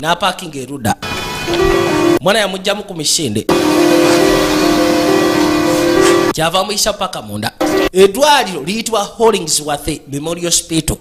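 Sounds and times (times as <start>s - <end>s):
loud held horn-like blare: 1.0s - 2.2s, 3.5s - 6.4s, 7.6s - 8.0s
rushing noise: 3.5s - 6.4s, 7.6s - 8.0s.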